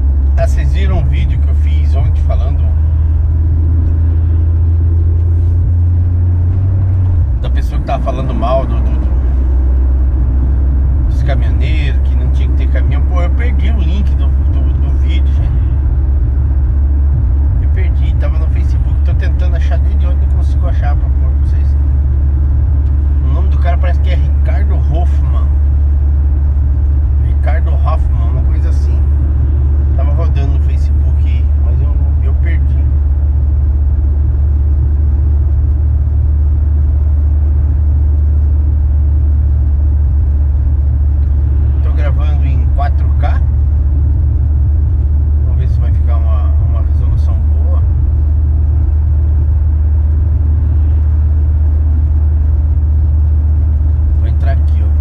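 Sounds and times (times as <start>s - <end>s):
car engine and tyres droning: 0.0s - 55.0s
man speaking: 0.4s - 3.0s, 7.4s - 9.4s, 11.0s - 15.8s, 17.6s - 21.9s, 23.1s - 25.6s, 27.2s - 29.2s, 29.9s - 33.0s, 41.7s - 43.6s, 45.4s - 48.0s, 54.2s - 55.0s.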